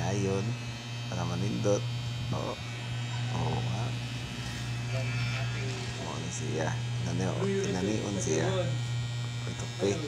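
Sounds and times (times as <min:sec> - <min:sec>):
electric hair clipper buzzing: 0:00.0 - 0:10.0.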